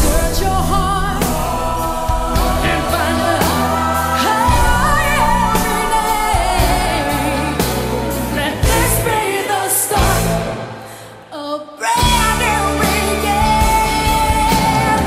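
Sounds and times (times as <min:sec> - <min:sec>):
band playing pop ballad: 0:00.0 - 0:11.0, 0:12.0 - 0:15.0
woman singing: 0:00.0 - 0:15.0.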